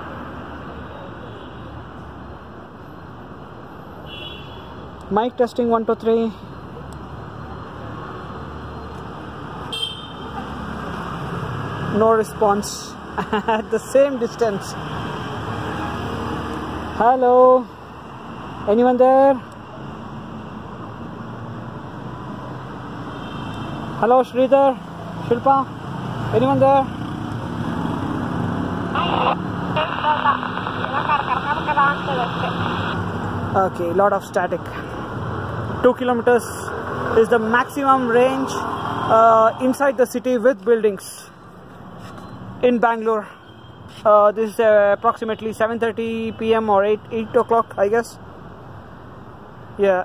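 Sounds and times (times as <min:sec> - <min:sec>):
city street traffic rumble: 0:00.0 - 0:50.0
garbled voice over radio: 0:28.9 - 0:33.0
radio static hiss: 0:28.9 - 0:33.0.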